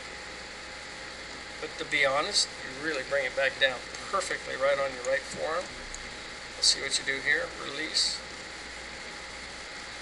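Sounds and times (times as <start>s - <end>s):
low hiss and hum: 0.0s - 10.0s.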